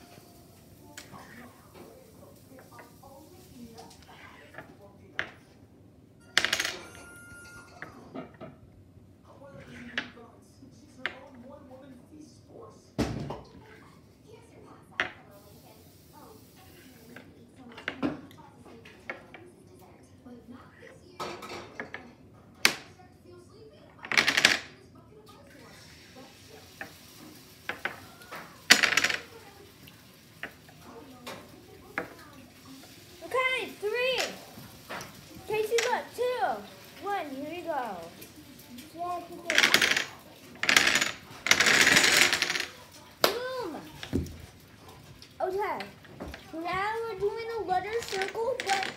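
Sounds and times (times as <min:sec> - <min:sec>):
dominoes clicking on wooden table: 0:24.0 - 0:24.7, 0:27.6 - 0:29.5, 0:34.0 - 0:37.6, 0:38.2 - 0:43.3, 0:47.8 - 0:48.9
dominoes toppling clatter: 0:24.0 - 0:24.7, 0:26.8 - 0:29.6, 0:33.7 - 0:43.2, 0:47.8 - 0:48.9.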